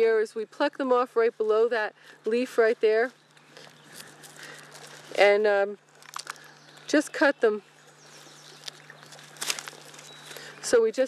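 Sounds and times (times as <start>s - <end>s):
steady low hum: 0.0s - 11.0s
leaves rustling: 0.9s - 11.0s.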